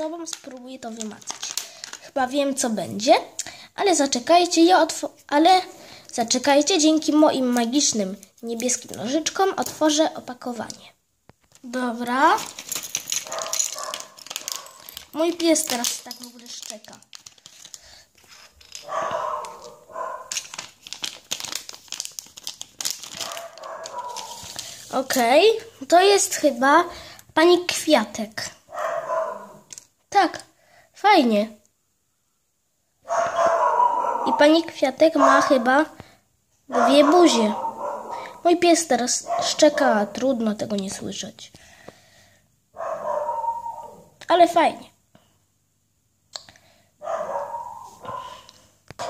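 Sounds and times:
plastic bag crinkling: 0.0s - 2.2s, 11.5s - 25.6s
dog barking: 13.2s - 14.9s, 18.8s - 20.3s, 23.2s - 24.4s, 28.7s - 29.6s, 33.0s - 34.6s, 35.2s - 35.7s, 36.7s - 38.4s, 39.2s - 40.1s, 42.8s - 44.1s, 47.0s - 48.5s.

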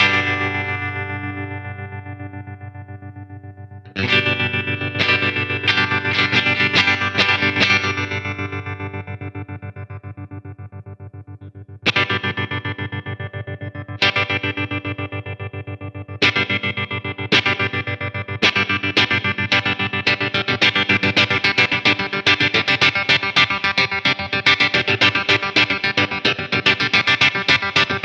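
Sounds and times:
electric guitar chords with tremolo: 0.0s - 28.0s.

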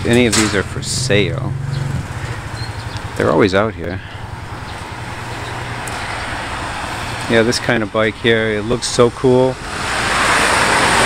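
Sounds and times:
traffic hum: 0.0s - 11.0s.

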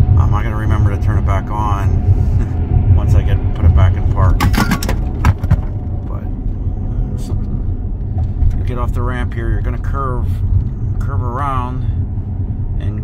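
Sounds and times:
road and tyre rumble: 0.0s - 13.0s.

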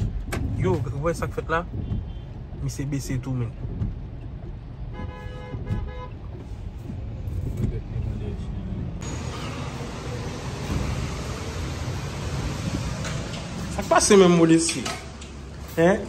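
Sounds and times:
car road rumble: 0.0s - 16.0s.

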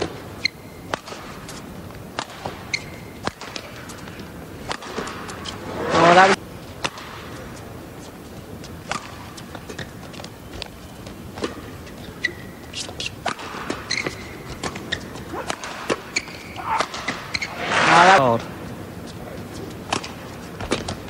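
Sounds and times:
shoe squeaks on court: 0.0s - 0.9s, 2.5s - 4.0s, 9.4s - 18.4s
racket hitting shuttlecock: 0.0s - 7.4s, 8.8s - 9.9s, 12.3s - 18.2s, 19.8s - 21.0s.

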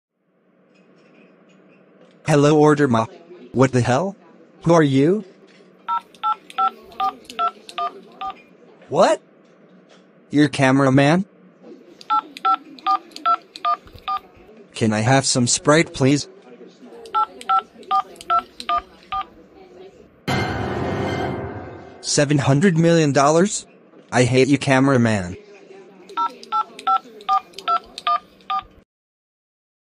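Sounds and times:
keypad beeps: 5.9s - 8.4s, 12.0s - 14.2s, 17.1s - 19.3s, 26.1s - 28.7s.

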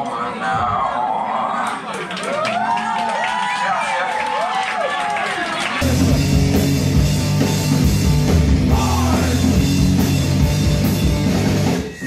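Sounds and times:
rock band playing live: 5.8s - 12.0s.

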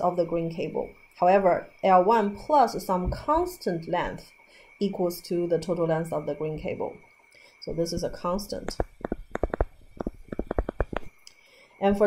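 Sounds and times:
stylus knocking on tablet screen: 8.0s - 11.1s.

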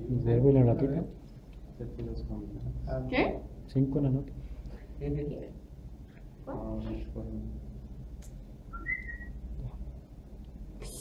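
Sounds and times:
low steady hum: 0.0s - 11.0s
high two-note whistle: 8.7s - 9.4s.

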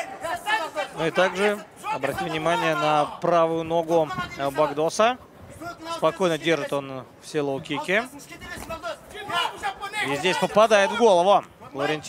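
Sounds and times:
low background noise: 0.0s - 12.0s
man talking: 0.0s - 12.0s.

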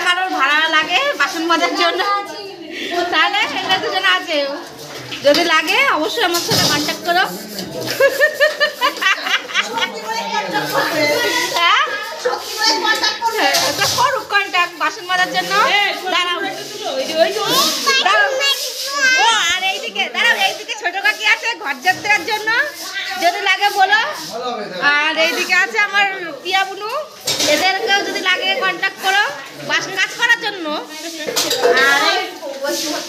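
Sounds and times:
children talking and calling out: 0.0s - 6.6s, 7.2s - 23.8s, 25.2s - 33.0s
metal utensils clinking: 26.5s - 30.4s, 31.0s - 33.0s.

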